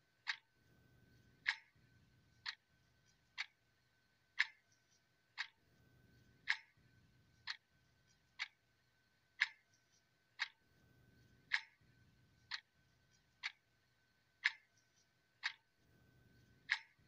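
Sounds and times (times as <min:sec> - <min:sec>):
clock ticking: 0:00.2 - 0:00.5, 0:01.4 - 0:01.8, 0:02.4 - 0:03.6, 0:04.3 - 0:05.6, 0:06.4 - 0:08.7, 0:09.3 - 0:10.6, 0:11.4 - 0:15.7, 0:16.3 - 0:17.0.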